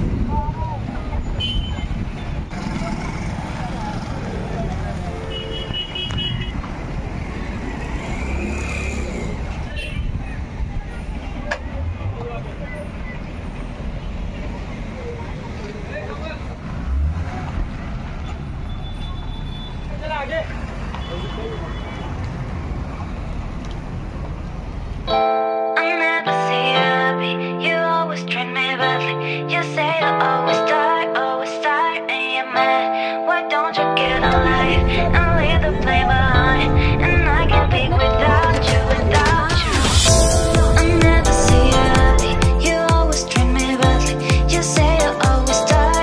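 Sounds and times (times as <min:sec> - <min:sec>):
vehicle engines and road noise: 0:00.0 - 0:25.1, 0:34.0 - 0:46.0
car horn toots: 0:01.4 - 0:01.9, 0:05.1 - 0:06.6
background voices: 0:29.8 - 0:46.0.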